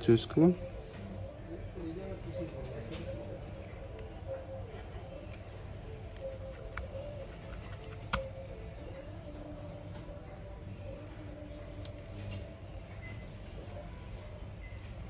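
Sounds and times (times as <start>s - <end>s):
faint wavering background tones: 0.0s - 15.0s.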